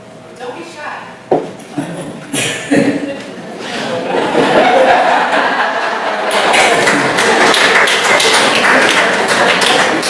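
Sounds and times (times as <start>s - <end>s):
audience clapping: 4.8s - 10.0s.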